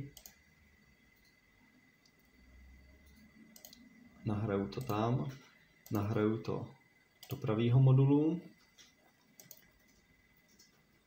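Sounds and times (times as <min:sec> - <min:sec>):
faint computer mouse clicks: 0:03.0 - 0:03.8, 0:08.8 - 0:10.8.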